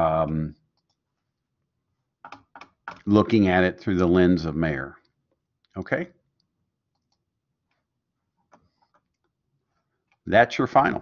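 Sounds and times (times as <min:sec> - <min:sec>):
computer mouse clicks: 0:00.7 - 0:01.0, 0:02.2 - 0:03.1, 0:06.4 - 0:09.4.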